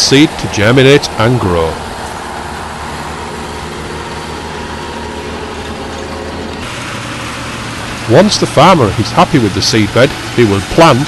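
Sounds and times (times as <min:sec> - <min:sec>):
tractor engine running: 0:00.0 - 0:11.0.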